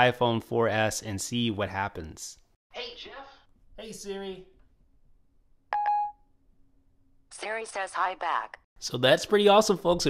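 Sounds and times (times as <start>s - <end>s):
short electronic beep: 5.8s - 6.2s.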